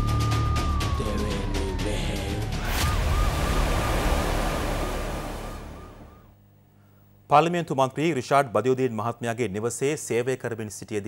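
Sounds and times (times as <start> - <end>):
wavering siren-like tone: 0.0 - 6.4
dense rush of noise: 2.6 - 6.3.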